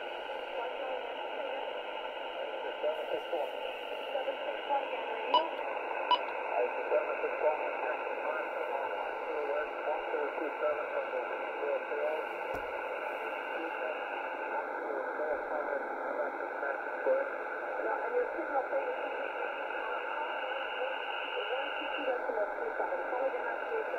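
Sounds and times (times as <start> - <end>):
radio static: 0.0 - 23.9.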